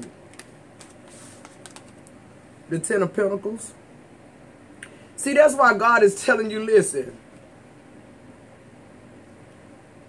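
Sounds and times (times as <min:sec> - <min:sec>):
card sliding: 0:00.3 - 0:02.1
cards clicking: 0:00.3 - 0:02.2.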